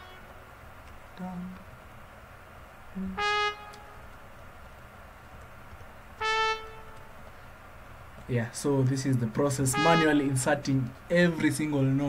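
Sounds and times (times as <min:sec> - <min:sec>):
sampled trumpet notes: 0:00.0 - 0:00.3, 0:03.0 - 0:04.2, 0:06.2 - 0:07.2, 0:09.6 - 0:10.7.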